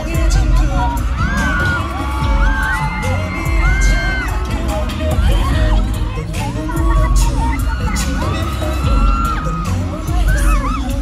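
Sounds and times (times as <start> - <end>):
crowd screaming: 0.0 - 11.0
pop dance music over sound system: 0.0 - 11.0.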